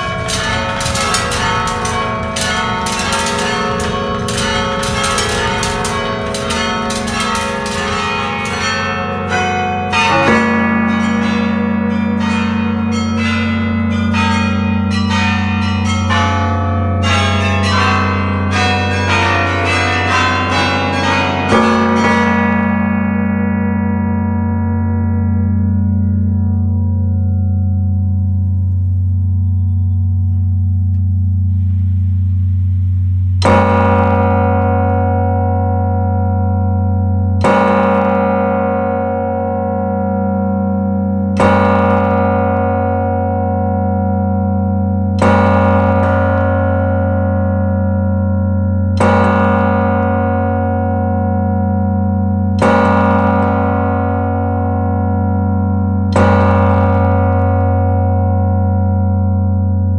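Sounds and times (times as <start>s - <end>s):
deep church bell ringing: 0.0s - 59.9s.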